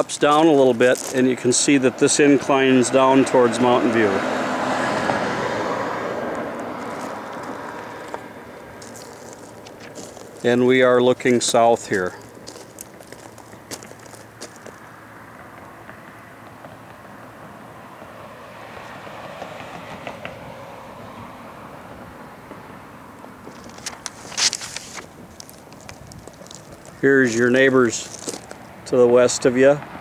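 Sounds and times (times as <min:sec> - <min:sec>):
car passing by: 0:00.0 - 0:12.1, 0:13.4 - 0:25.3
street traffic: 0:00.0 - 0:30.0
sharp clicks and rustles: 0:23.4 - 0:28.6.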